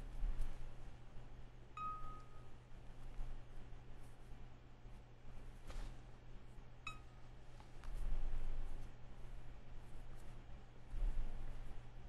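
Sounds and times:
faint steady hum: 0.0 - 12.0
bright chime: 1.8 - 2.5.

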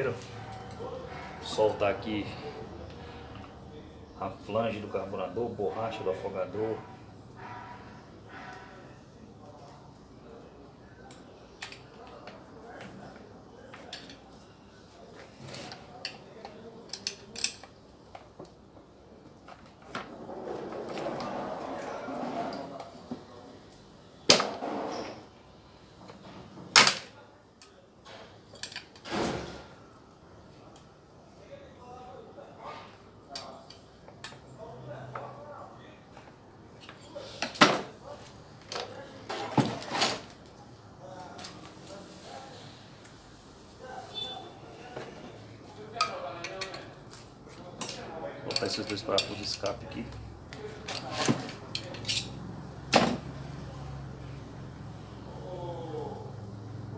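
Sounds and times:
rustling and scraping: 15.1 - 16.0, 19.4 - 23.3, 36.8 - 40.5, 50.6 - 52.4
hand tools clicking on metal parts: 16.0 - 17.8, 47.8 - 49.8, 50.8 - 52.4.

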